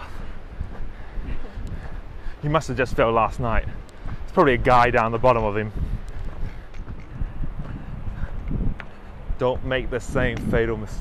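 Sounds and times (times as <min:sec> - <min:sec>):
wind rumbling on microphone: 0:00.0 - 0:11.0.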